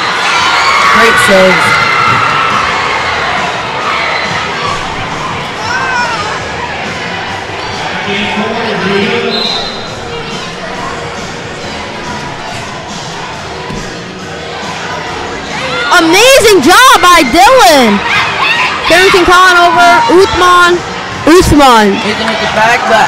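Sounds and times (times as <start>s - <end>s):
children shouting and cheering: 0.0s - 7.9s, 14.6s - 23.0s.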